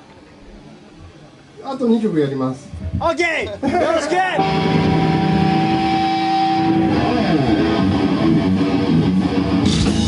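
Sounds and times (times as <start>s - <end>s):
band playing: 4.4s - 10.0s
guitar amp feedback drone: 4.4s - 10.0s.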